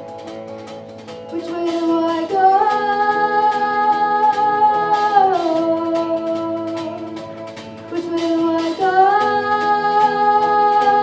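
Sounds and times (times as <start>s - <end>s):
rock band playing: 0.0s - 11.0s
girl singing: 1.3s - 11.0s.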